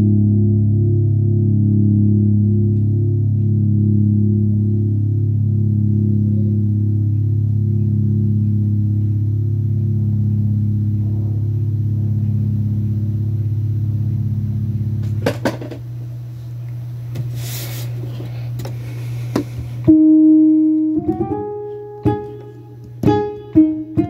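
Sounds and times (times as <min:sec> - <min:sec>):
low keyboard chord: 0:00.0 - 0:17.2, 0:18.8 - 0:24.0.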